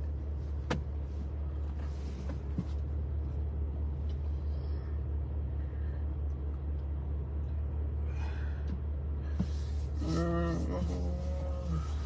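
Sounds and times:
car engine rumble inside cabin: 0.0s - 12.0s.

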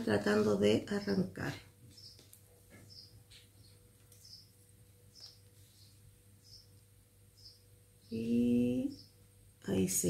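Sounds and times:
low steady hum: 0.0s - 10.0s
faint high bird chirps: 1.9s - 9.3s.

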